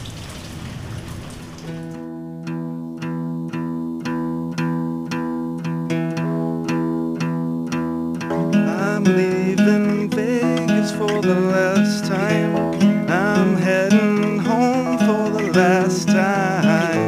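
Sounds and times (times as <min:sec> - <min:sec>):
rain-like hiss: 0:00.0 - 0:02.0
guitar picking sustained notes: 0:01.8 - 0:17.0.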